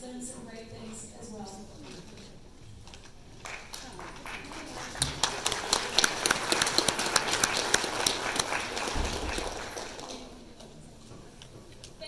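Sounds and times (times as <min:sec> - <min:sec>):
sharp claps close by: 0:03.4 - 0:10.3
audience applause: 0:03.4 - 0:10.5.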